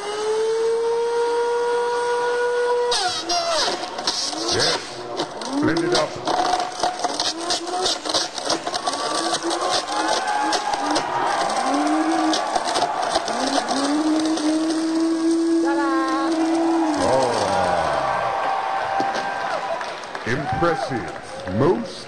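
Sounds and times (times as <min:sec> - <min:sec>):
blender motor running: 0:00.0 - 0:19.7.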